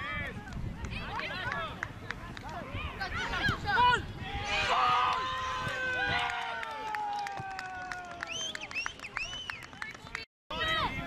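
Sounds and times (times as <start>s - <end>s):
people shouting on a field: 2.5s - 8.3s.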